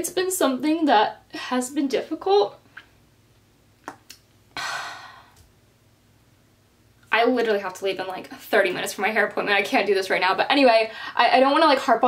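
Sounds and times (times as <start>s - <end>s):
woman sighing: 4.6s - 5.4s.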